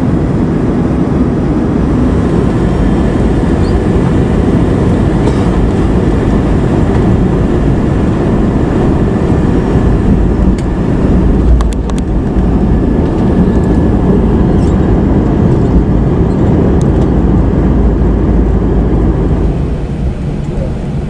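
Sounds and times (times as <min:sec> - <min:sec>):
jet engines and wheels rumbling: 0:00.0 - 0:21.0.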